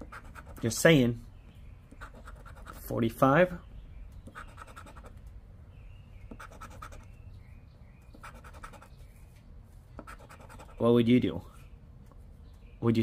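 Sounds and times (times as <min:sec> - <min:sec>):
chip scratching lottery ticket: 0:00.0 - 0:00.8, 0:01.9 - 0:02.9, 0:04.3 - 0:05.2, 0:06.3 - 0:07.1, 0:08.2 - 0:08.9, 0:10.0 - 0:10.8.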